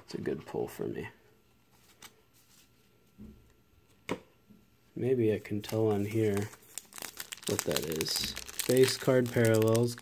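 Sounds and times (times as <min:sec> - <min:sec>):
handling cards at a table: 0:01.7 - 0:02.9.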